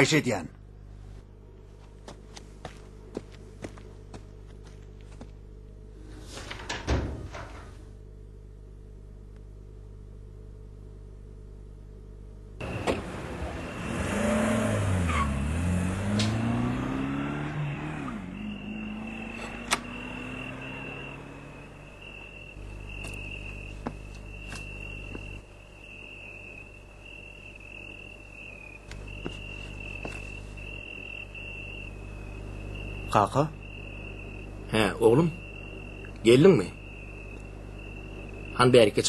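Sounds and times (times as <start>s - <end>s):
crickets chirring: 12.6s - 15.4s, 16.0s - 39.0s.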